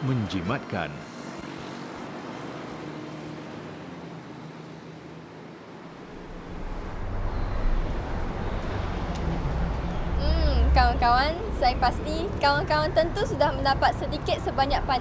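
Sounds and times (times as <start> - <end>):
approaching vehicle rumble: 5.8 - 14.6.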